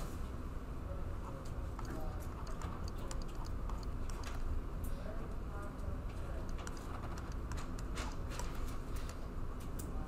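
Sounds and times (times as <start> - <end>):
low room rumble: 0.0 - 10.0
pen tapping on a screen: 1.8 - 4.4.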